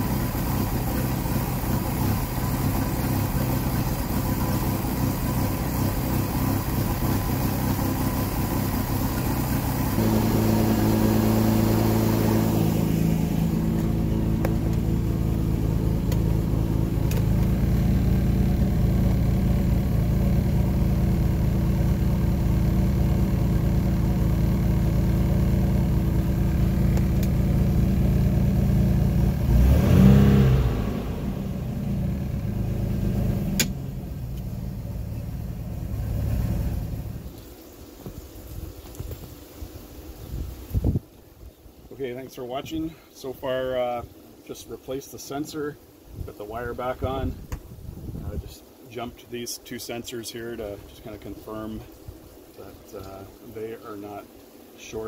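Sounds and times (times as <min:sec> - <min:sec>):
boat engine running: 0:00.0 - 0:37.2.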